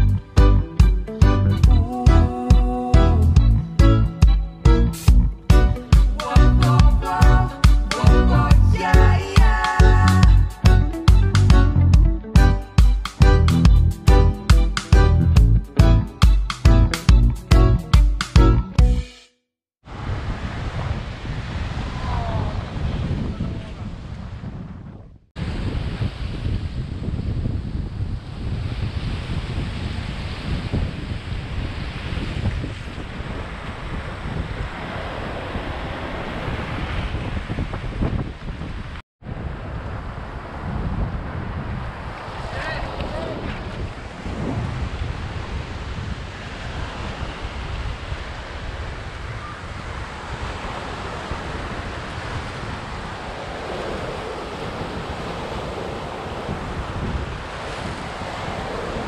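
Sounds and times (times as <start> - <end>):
wind buffeting microphone: 19.8 - 59.0.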